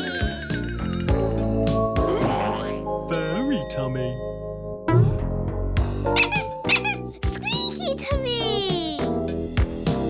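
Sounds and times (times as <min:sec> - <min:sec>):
cartoon soundtrack music: 0:00.0 - 0:10.0.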